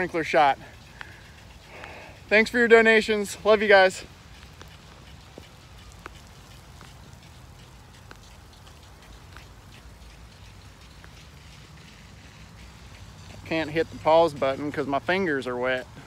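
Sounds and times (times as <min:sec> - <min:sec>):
sprinkler spray pattering on leaves: 0:00.0 - 0:16.0.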